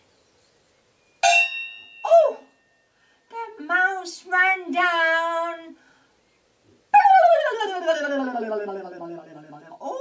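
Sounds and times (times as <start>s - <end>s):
woman's voice gliding down in pitch: 2.0s - 2.5s, 6.9s - 10.0s.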